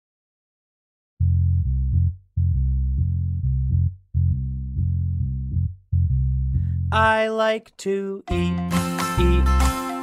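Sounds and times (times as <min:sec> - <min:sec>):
plucked bass line: 0:01.2 - 0:07.4, 0:08.3 - 0:10.0.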